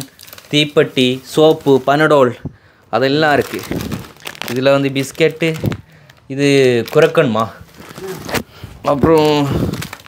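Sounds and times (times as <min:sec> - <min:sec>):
person talking: 0:00.0 - 0:09.7
plastic packets rustling: 0:00.0 - 0:10.0.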